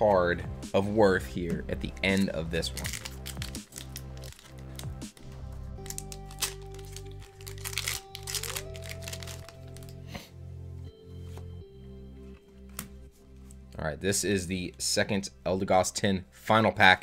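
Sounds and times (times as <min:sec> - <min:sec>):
background music with low bass: 0:00.0 - 0:17.0
foil wrapper crinkling: 0:02.1 - 0:10.0.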